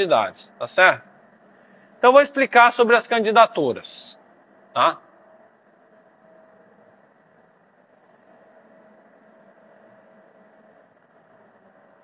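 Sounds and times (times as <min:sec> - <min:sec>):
faint steady hum: 0:00.0 - 0:12.0
low steady hiss: 0:00.0 - 0:12.0.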